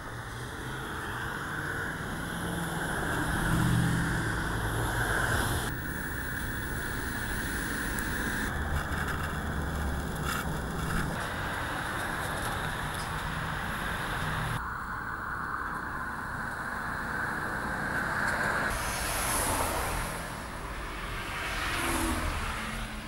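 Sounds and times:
road traffic passing: 0:00.0 - 0:23.0.

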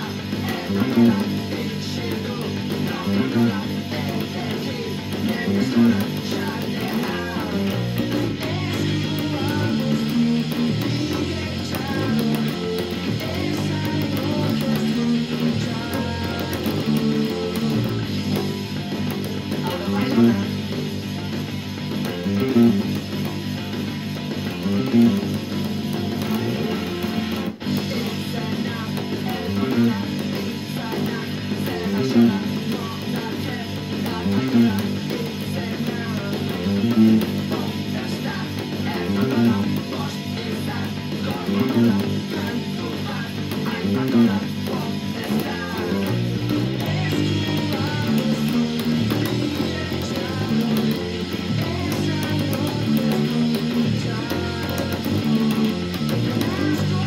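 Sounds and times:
electric bass guitar riff: 0:00.0 - 0:57.0
rock band with electric guitars: 0:00.0 - 0:57.0.

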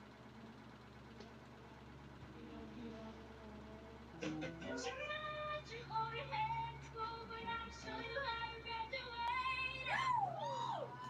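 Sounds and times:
woman singing: 0:02.5 - 0:10.4
woman laughing: 0:04.2 - 0:04.9.

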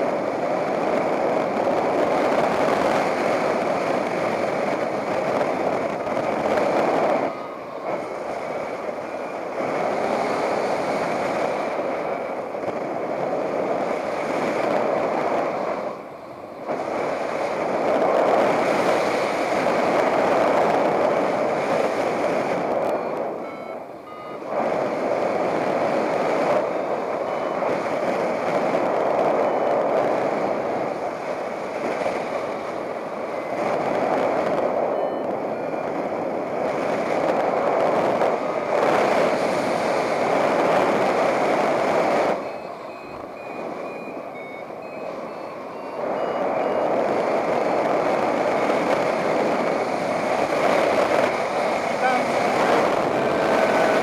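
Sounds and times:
wind rushing over microphone: 0:00.0 - 0:54.0
short high variometer beeps: 0:06.6 - 0:10.9, 0:22.4 - 0:28.0, 0:32.3 - 0:36.6, 0:41.0 - 0:54.0.

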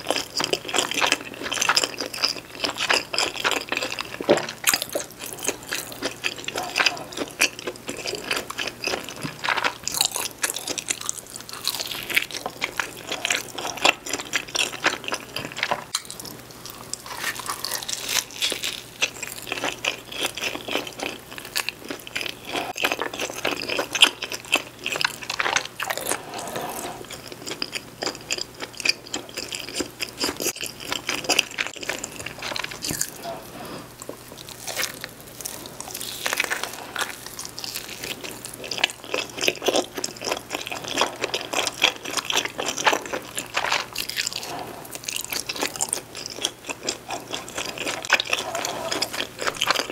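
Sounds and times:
biting and chewing pizza: 0:00.0 - 0:49.9.

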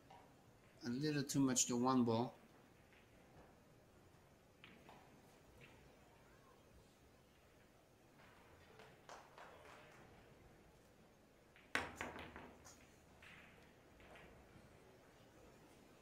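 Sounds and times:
pool balls knocking together: 0:11.5 - 0:14.6.

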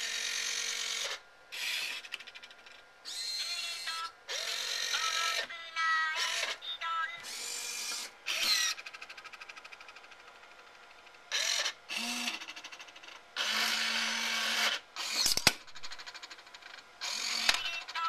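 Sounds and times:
small electric motors whirring: 0:00.0 - 0:06.6, 0:07.2 - 0:09.6, 0:11.3 - 0:18.0
sharp click: 0:15.2 - 0:15.6.

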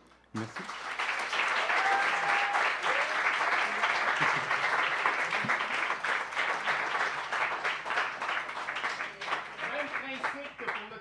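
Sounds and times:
audience clapping: 0:00.0 - 0:11.0.

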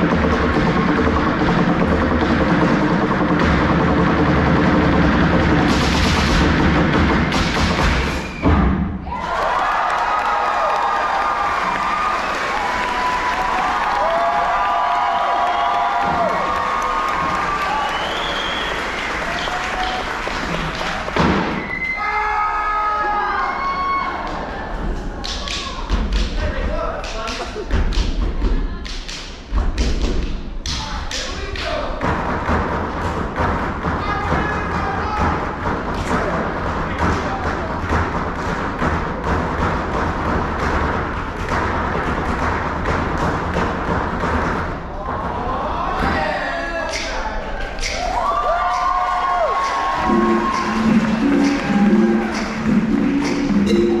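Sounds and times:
loud music with heavy bass: 0:00.0 - 0:08.6, 0:49.8 - 0:54.0
sharp percussive hits and thumps: 0:00.0 - 0:09.0, 0:20.4 - 0:21.7, 0:25.4 - 0:45.4, 0:49.6 - 0:54.0.

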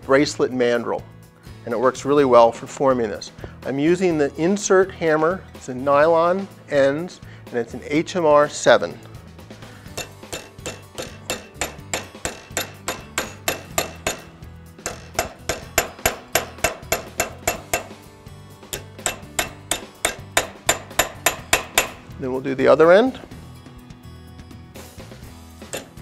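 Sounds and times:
hammer striking metal bar: 0:09.9 - 0:18.0, 0:18.7 - 0:22.1, 0:25.7 - 0:26.0.

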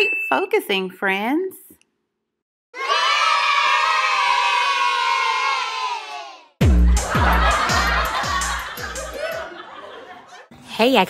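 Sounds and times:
children cheering: 0:02.8 - 0:06.5.

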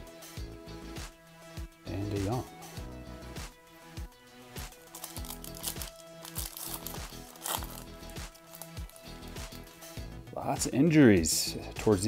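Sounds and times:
background music: 0:00.0 - 0:12.0
foil wrapper crinkling and tearing: 0:04.6 - 0:09.2.

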